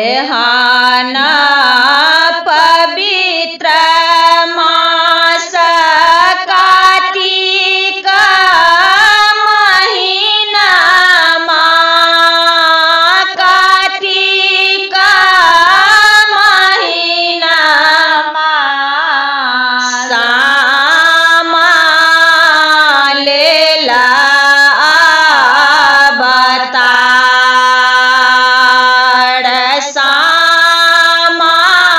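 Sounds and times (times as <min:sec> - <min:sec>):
woman singing mournful song: 0:00.0 - 0:31.9.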